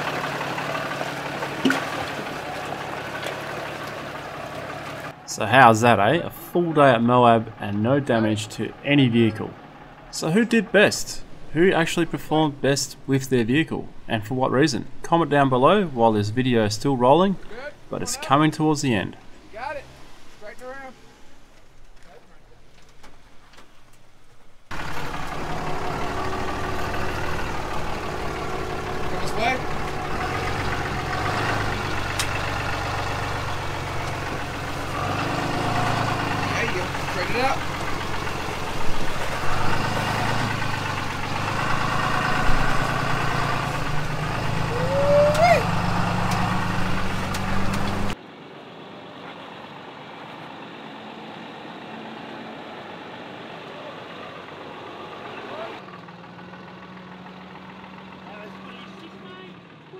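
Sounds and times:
off-road vehicle engines: 0.0 - 59.9
indistinct voices: 24.8 - 48.1.

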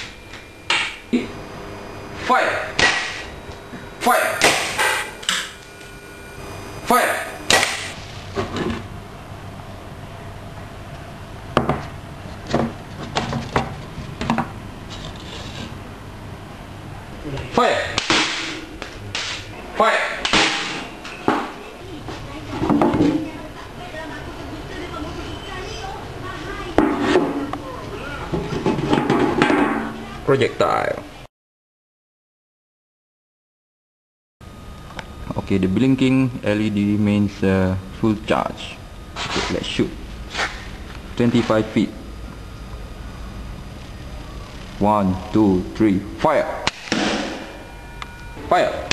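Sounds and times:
person shouting: 4.0 - 4.4, 6.9 - 7.4
faint voices: 21.5 - 28.9.

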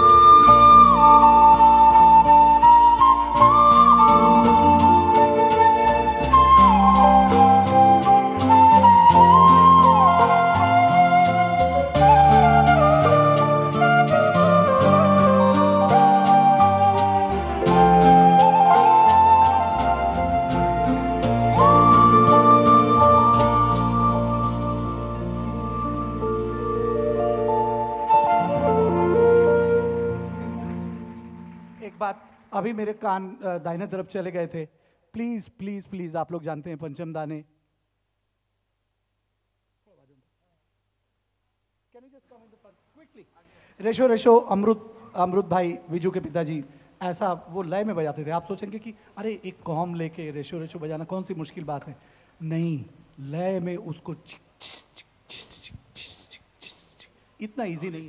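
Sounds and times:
bamboo flute melody: 0.0 - 31.8
band accompaniment: 3.2 - 31.9
light percussion: 54.6 - 57.2.

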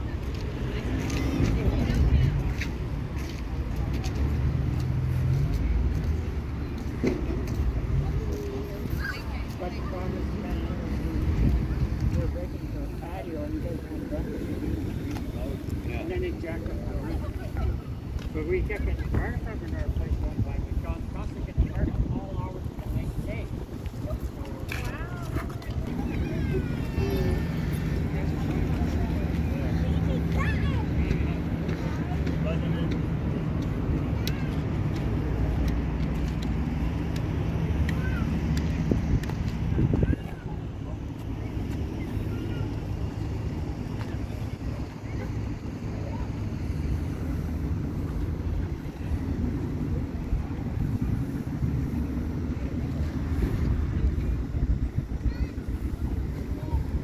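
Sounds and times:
people talking indistinctly: 0.0 - 57.0
steady low rumble: 9.6 - 57.0.

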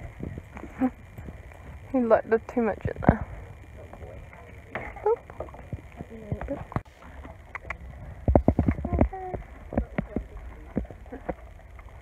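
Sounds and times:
woman murmuring: 8.8 - 9.5.

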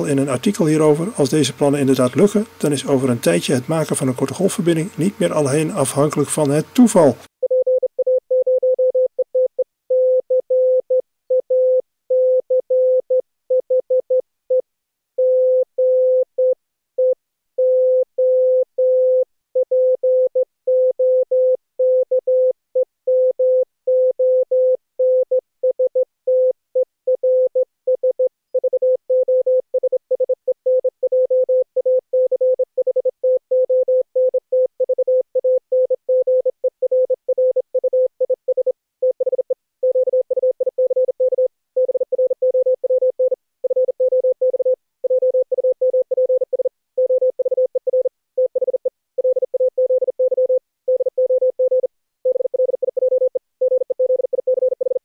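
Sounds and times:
morse code beeps: 27.2 - 55.0.

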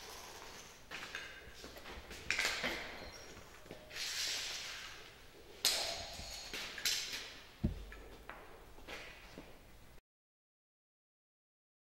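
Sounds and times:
dull thud on concrete: 7.6 - 8.0.

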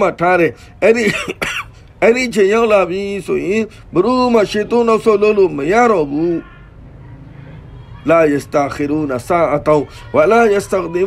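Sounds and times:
man preaching: 0.0 - 6.7, 8.0 - 11.0.

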